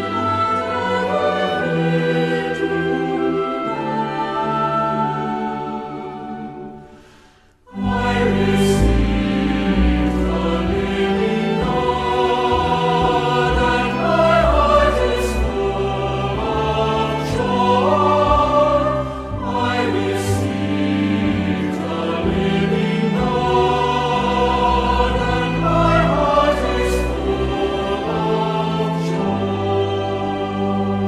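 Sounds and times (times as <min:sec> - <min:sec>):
choir singing: 0:00.0 - 0:31.0.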